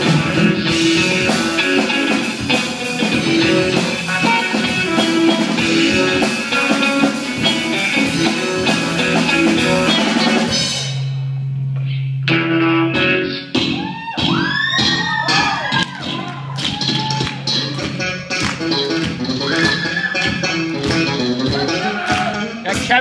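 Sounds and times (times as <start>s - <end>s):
rock band playing: 0.0s - 23.0s.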